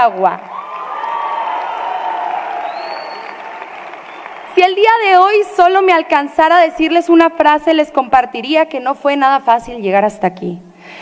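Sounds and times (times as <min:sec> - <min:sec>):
audience applauding: 0:00.0 - 0:05.0
audience cheering and shouting: 0:00.5 - 0:04.5.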